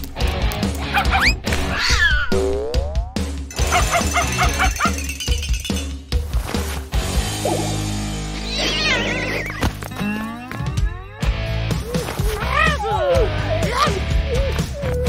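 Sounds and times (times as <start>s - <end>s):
cartoon background music: 0.7s - 15.0s
dog and cat yowls and whimpers: 8.4s - 15.0s.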